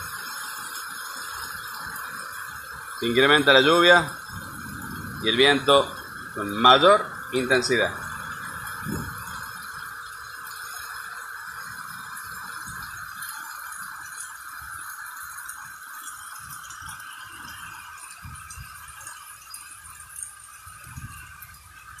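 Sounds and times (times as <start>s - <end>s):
wind buffeting microphone: 0.0s - 14.9s, 16.1s - 22.0s
heavy rain pouring: 0.0s - 22.0s.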